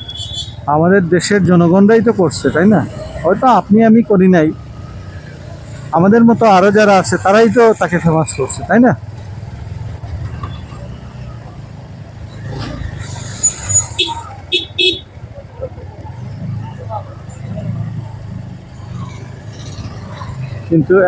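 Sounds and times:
street traffic rumble: 0.0 - 21.0
motorcycle engine: 4.4 - 20.9.

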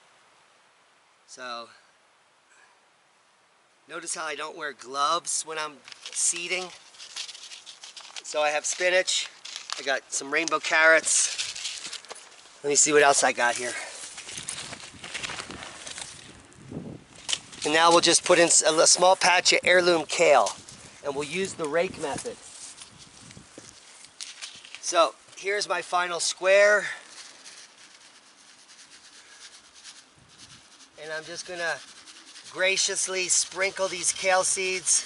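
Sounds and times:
fingers rustling dry soil: 5.1 - 35.0.

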